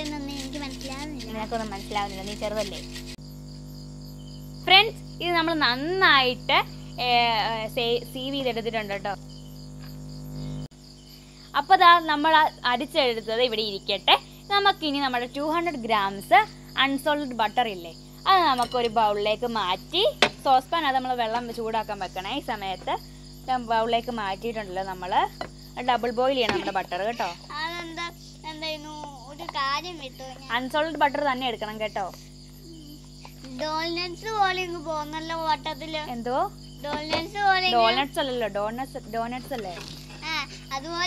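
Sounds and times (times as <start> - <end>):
girl talking: 0.0 - 2.8, 25.8 - 41.0
person speaking: 0.0 - 3.0, 33.4 - 41.0
crickets chirping: 0.0 - 41.0.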